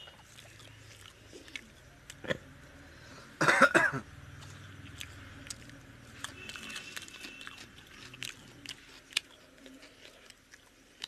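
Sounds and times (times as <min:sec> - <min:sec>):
man coughing: 0:03.4 - 0:04.1.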